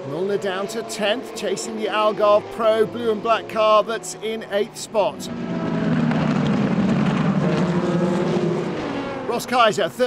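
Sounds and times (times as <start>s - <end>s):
race car engines at speed: 0.0s - 10.0s.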